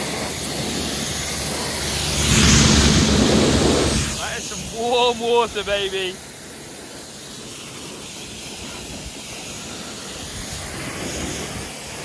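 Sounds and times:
pressure washer spraying: 0.0 - 12.0.

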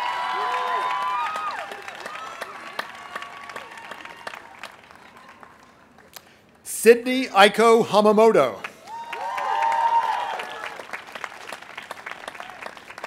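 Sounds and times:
whoops: 0.0 - 5.4, 8.8 - 10.9
crowd applauding and cheering: 0.0 - 6.2, 8.6 - 13.0.

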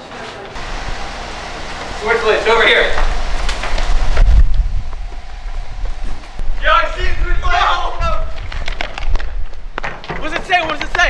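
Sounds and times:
wind buffeting microphone: 0.6 - 11.0
footfalls of people running: 2.9 - 11.0.

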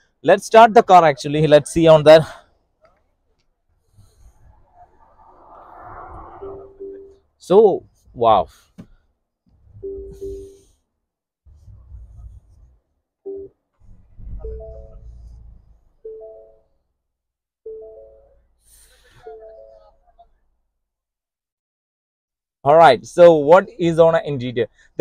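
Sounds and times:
dashboard electronic chimes: 16.1 - 16.7, 19.3 - 19.9.

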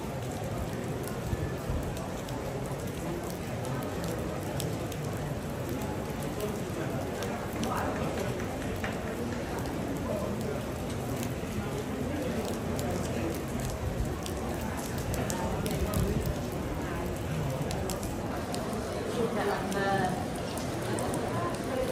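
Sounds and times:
rain falling and dripping: 0.0 - 21.9.

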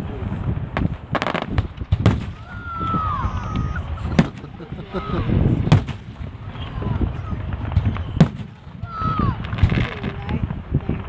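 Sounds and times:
fireworks bangs: 0.0 - 11.0.

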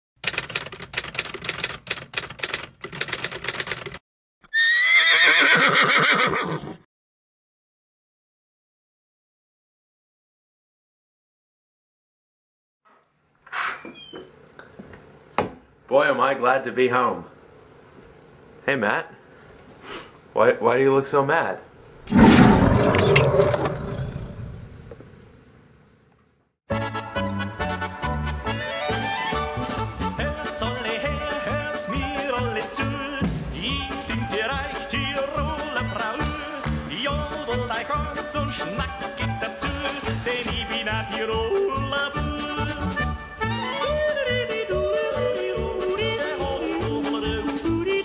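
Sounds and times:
rapid irregular clicking: 0.2 - 4.0
loud roar: 22.1 - 24.8.

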